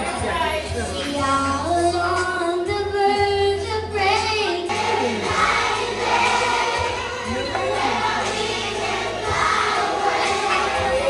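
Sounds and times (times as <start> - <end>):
children singing in unison: 4.7 - 11.0.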